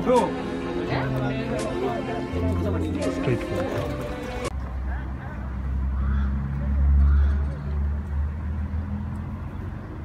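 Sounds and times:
faint voices: 0.0s - 8.1s
vehicle engine rumble: 0.4s - 10.0s.

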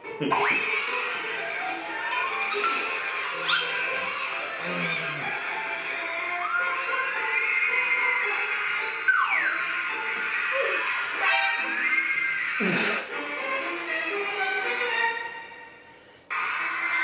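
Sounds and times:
music with gliding tones: 0.0s - 17.0s.

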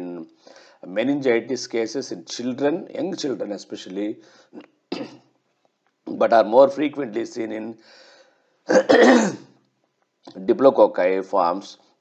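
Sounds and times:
man clearing his throat: 4.9s - 5.2s, 8.7s - 9.5s.

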